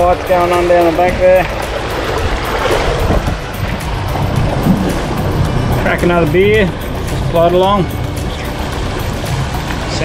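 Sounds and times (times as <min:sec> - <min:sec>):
outboard motor running: 0:00.0 - 0:10.0
water rushing past hull: 0:00.0 - 0:10.0
wind buffeting microphone: 0:00.0 - 0:10.0.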